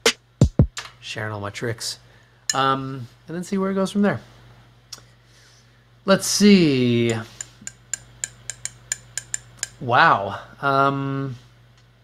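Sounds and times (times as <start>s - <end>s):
person speaking: 6.2s - 7.6s
sharp metallic clicks: 7.1s - 9.8s.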